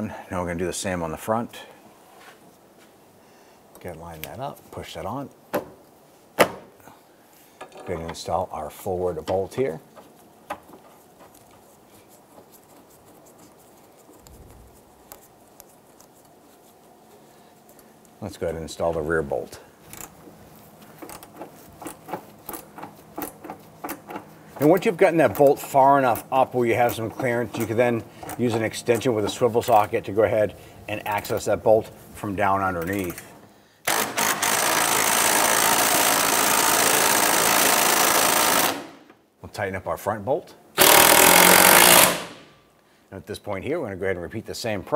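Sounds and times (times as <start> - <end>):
power ratchet buzzing: 33.8 - 39.0, 40.8 - 42.4.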